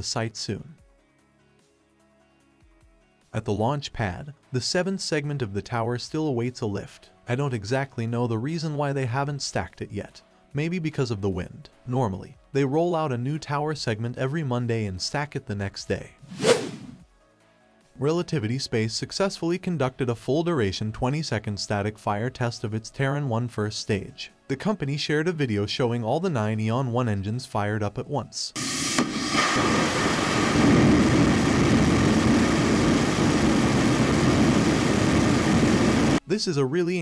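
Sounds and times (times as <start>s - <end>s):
whoosh transition effect: 16.2s - 17.0s
rocket engines roaring: 29.6s - 36.2s.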